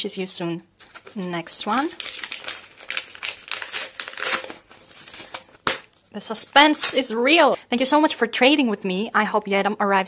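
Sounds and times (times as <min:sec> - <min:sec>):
paper crinkling and rustling: 0:00.8 - 0:06.0.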